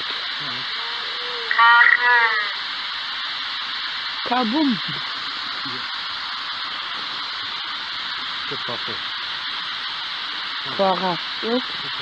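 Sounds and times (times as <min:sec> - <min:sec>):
radio sweep hiss: 0:00.0 - 0:12.0
high-pitched voice-like fragment: 0:00.8 - 0:02.6.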